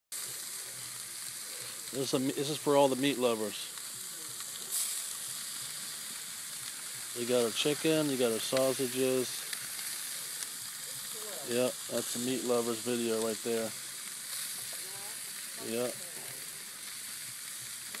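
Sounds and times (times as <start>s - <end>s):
meat sizzling on a barbecue grill: 0.1s - 18.0s.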